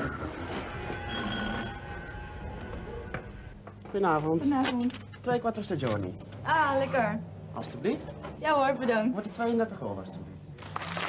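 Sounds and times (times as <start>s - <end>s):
intercom doorbell ringing: 0.9s - 2.2s.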